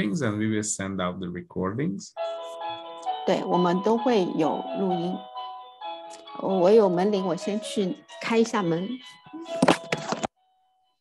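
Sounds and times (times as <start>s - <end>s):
woman speaking: 3.1s - 5.2s, 6.2s - 9.6s.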